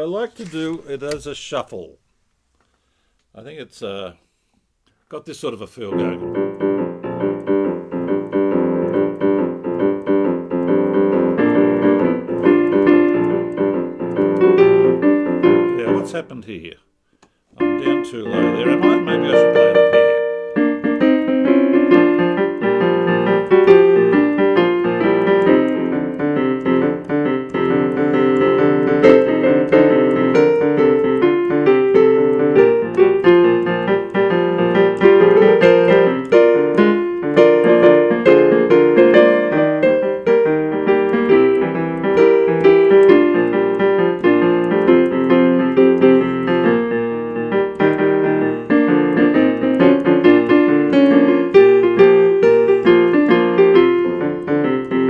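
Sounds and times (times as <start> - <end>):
upbeat stage piano tune: 5.8 - 16.4, 17.6 - 55.0.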